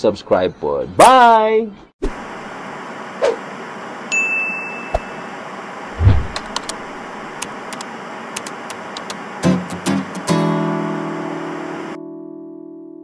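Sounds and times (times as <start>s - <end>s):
low thud: 6.0s - 6.4s
sharp clicks: 6.3s - 6.8s, 7.4s - 9.2s.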